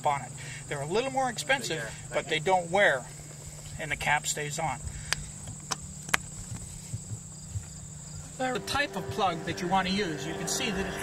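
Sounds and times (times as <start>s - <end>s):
low hum: 4.9s - 11.0s
high-pitched whine: 8.1s - 11.0s.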